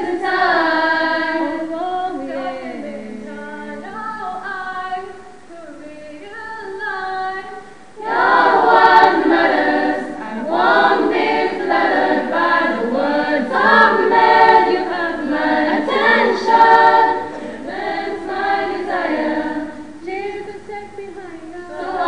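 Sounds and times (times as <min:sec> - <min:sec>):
girls choir singing a hymn: 0:00.0 - 0:22.0.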